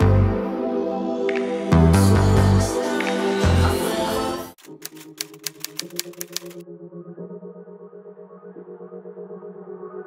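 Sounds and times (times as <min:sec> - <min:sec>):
soft background music: 0:00.0 - 0:10.0
laptop keyboard typing: 0:04.6 - 0:06.6.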